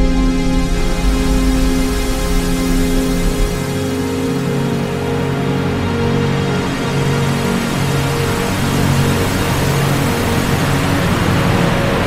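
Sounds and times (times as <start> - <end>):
loud steady rushing noise: 0.0 - 12.0
sustained low film score music: 0.0 - 12.0.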